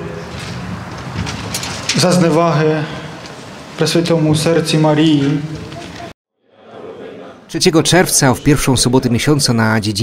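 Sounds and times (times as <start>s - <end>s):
outdoor background noise: 0.0s - 10.0s
man speaking into a microphone: 7.5s - 10.0s.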